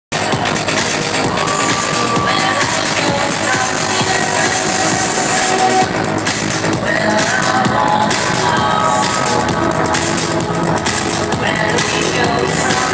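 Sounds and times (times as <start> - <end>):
electronic dance music: 0.1 - 12.9.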